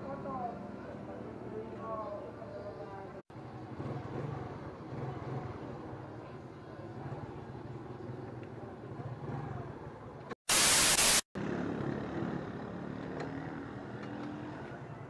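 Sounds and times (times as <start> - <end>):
scooter engine and road noise: 3.3 - 10.4, 11.4 - 15.0
loud burst of static: 10.5 - 11.3.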